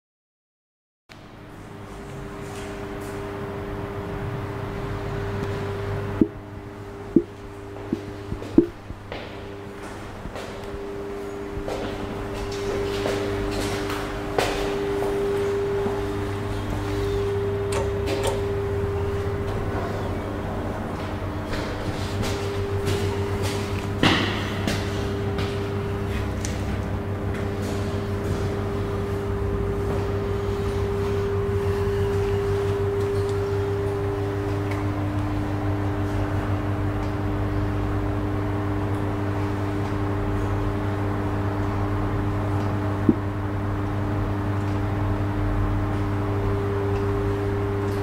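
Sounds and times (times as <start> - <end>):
elevator machine hum: 1.3 - 48.0.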